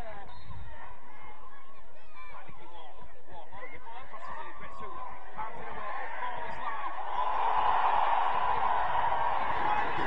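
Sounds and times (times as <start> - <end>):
spectators and players shouting: 4.0 - 10.0.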